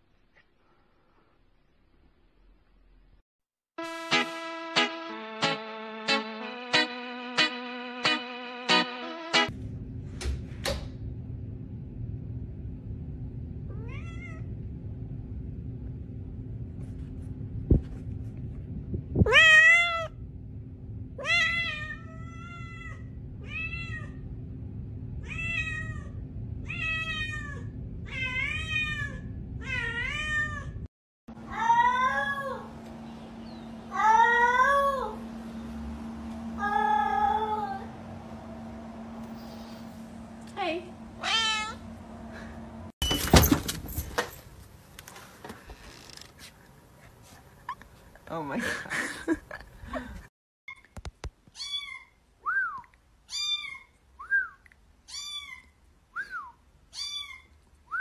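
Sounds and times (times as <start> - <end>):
cat meowing: 19.2 - 20.1, 41.2 - 41.8
low loud cat meows: 19.2 - 20.1, 41.2 - 41.8.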